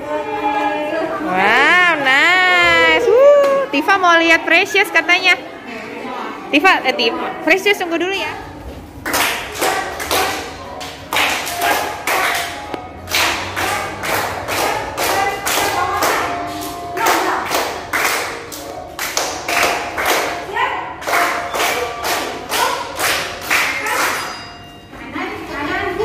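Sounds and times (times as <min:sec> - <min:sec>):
hand claps keeping time: 0:09.0 - 0:24.5.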